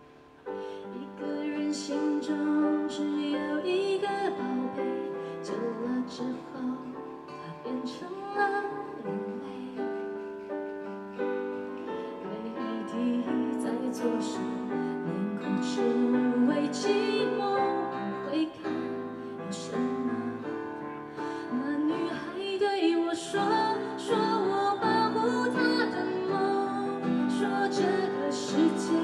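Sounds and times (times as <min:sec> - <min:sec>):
woman singing pop ballad: 0:00.9 - 0:10.0, 0:12.2 - 0:20.5, 0:21.3 - 0:29.0.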